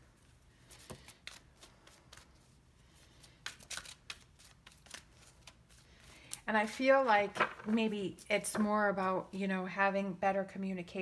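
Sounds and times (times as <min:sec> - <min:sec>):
cards being shuffled: 0:03.0 - 0:07.9.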